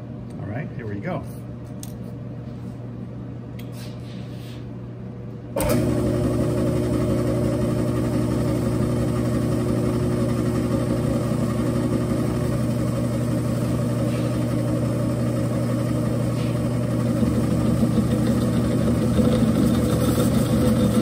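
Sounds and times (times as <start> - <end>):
mill-drill motor hum: 5.6 - 21.0.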